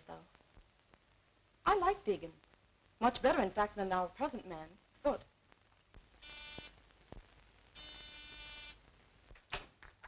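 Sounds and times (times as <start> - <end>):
electric door buzzer: 6.2 - 6.7, 7.8 - 8.8.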